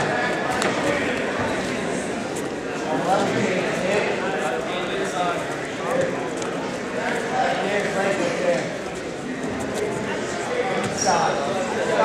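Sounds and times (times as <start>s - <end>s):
indistinct chatter of spectators: 0.0s - 12.0s.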